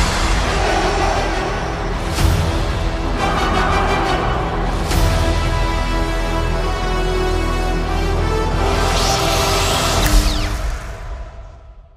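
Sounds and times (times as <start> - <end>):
trailer music: 0.0 - 11.9.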